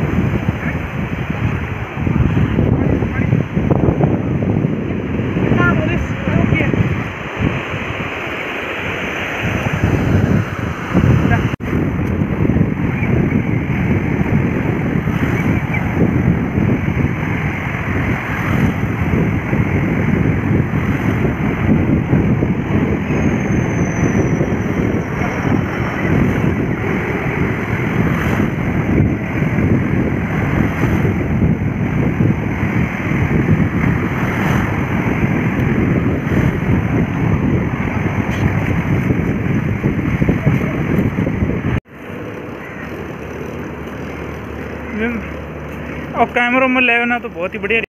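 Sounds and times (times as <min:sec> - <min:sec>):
surf breaking in shallows: 0:00.0 - 0:23.0, 0:24.4 - 0:47.6
wind buffeting a microphone: 0:00.0 - 0:47.9.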